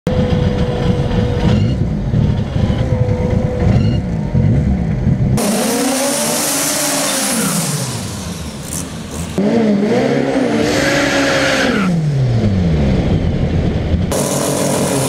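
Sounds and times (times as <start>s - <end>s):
engine revving: 0.1s - 15.0s
spinning tyres hissing: 14.1s - 15.0s.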